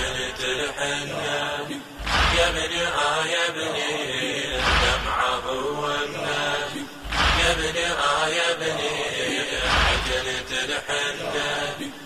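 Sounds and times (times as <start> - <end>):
men chanting a lament: 0.0 - 12.0
deep beat: 2.0 - 2.7, 4.6 - 5.2, 7.1 - 7.7.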